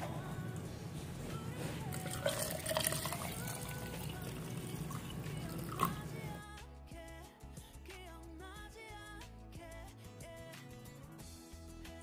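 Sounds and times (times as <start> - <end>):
water pouring into plastic cup: 1.9 - 6.4.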